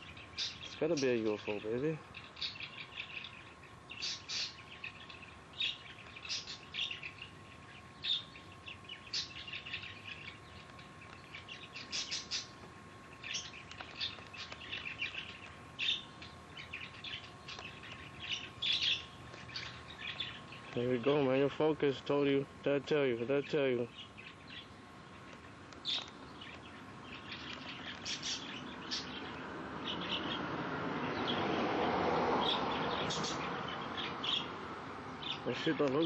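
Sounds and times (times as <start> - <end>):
small birds chirping: 0.0 - 36.0.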